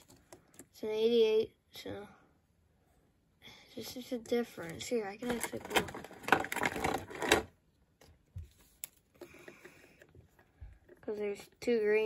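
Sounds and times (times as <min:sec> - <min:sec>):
plastic toy parts rattling: 0:04.4 - 0:07.6.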